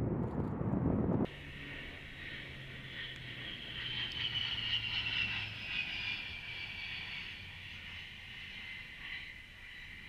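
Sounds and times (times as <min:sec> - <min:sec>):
high engine whine: 0:00.0 - 0:10.0
low propeller hum: 0:00.0 - 0:10.0
turboprop aircraft flying past: 0:00.0 - 0:10.0.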